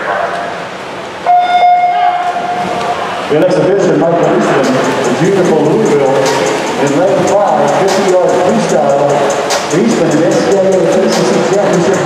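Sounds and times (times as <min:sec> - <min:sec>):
loud electronic beep: 0:01.3 - 0:02.3.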